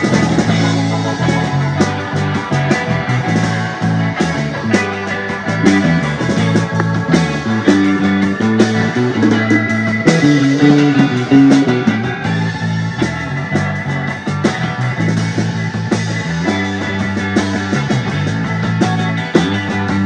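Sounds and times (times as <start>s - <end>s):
live blues-rock band: 0.0s - 20.0s.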